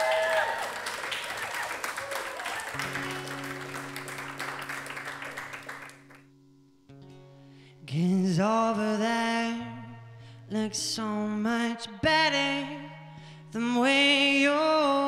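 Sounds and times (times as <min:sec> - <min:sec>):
audience applause: 0:00.0 - 0:06.2
acoustic guitar: 0:02.7 - 0:15.0.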